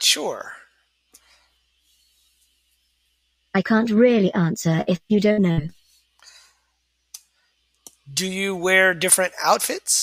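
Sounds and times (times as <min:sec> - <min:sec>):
soft breath-like hiss: 0:01.1 - 0:02.6, 0:05.8 - 0:07.7.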